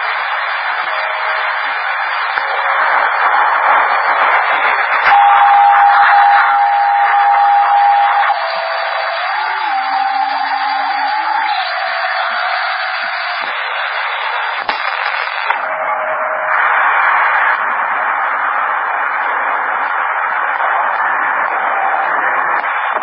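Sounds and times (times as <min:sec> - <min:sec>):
radio static hiss: 0:00.0 - 0:23.0
steady whistle: 0:00.0 - 0:23.0
wavering radio tones: 0:00.0 - 0:23.0.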